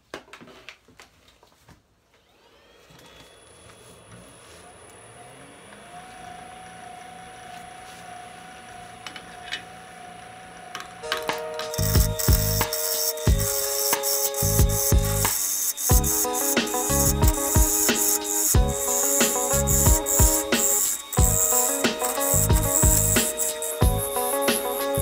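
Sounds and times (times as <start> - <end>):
wood lathe motor whine and hum: 2.2 - 25.0
background music with a beat: 11.0 - 25.0.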